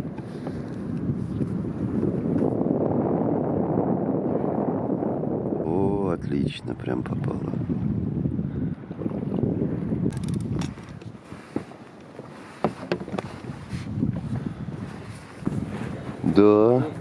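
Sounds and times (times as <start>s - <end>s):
water moving around boat: 0.0s - 17.0s
wind buffeting microphone: 0.0s - 17.0s
light knocks: 12.6s - 13.3s.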